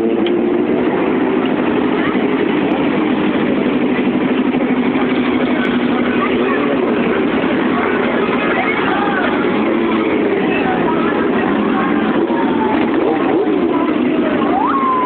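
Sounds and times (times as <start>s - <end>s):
motorcycle engines passing slowly: 0.0s - 15.0s.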